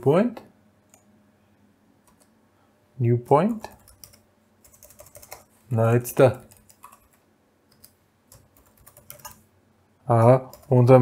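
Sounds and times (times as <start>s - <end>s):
computer keyboard typing: 2.0s - 2.3s, 3.5s - 5.5s, 6.3s - 9.4s, 10.2s - 11.0s.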